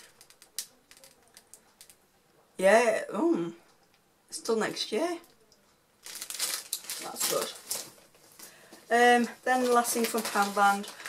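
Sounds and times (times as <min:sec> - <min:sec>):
wrapper crinkling: 0:00.0 - 0:02.0, 0:06.0 - 0:11.0.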